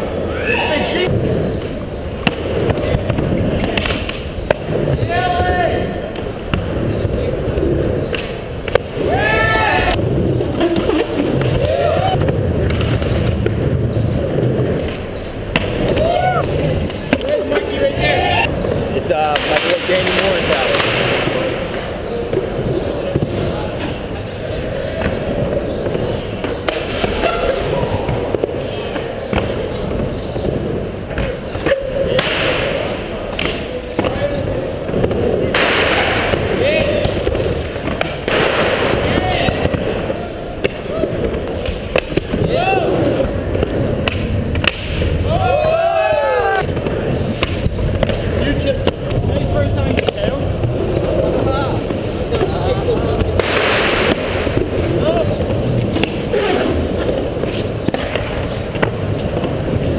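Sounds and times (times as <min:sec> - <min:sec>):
murmur of people talking: 0:00.0 - 0:59.9
skateboard wheels rolling on concrete: 0:00.0 - 0:59.9
skateboard clacks: 0:09.8 - 0:45.3, 0:46.0 - 0:59.9.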